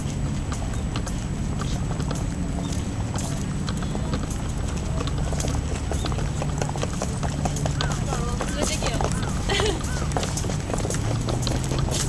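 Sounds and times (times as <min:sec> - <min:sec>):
footsteps on pavement: 0:00.0 - 0:12.0
steady low rumble: 0:00.0 - 0:12.0.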